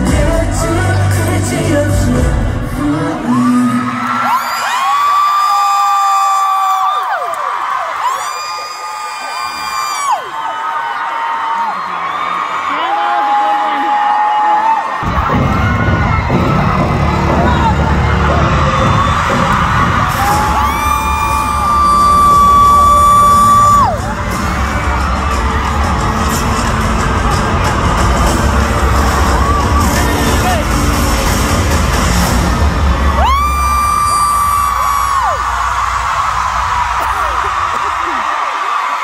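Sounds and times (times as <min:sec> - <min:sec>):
concert music with heavy bass: 0:00.0 - 0:04.1, 0:15.0 - 0:38.4
crowd cheering: 0:02.2 - 0:39.0.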